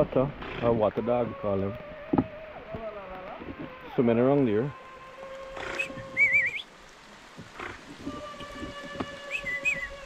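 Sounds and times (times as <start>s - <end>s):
rain falling on river: 0.0s - 10.0s
wavering whistle-like call: 5.5s - 6.7s, 8.0s - 10.0s.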